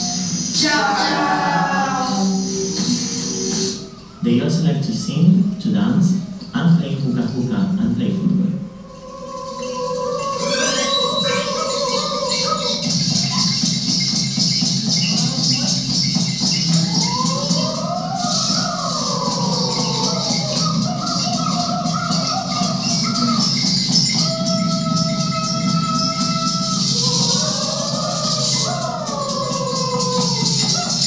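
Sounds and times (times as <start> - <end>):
high gliding melody line: 8.4 - 14.1
shaken rattles: 8.9 - 31.0.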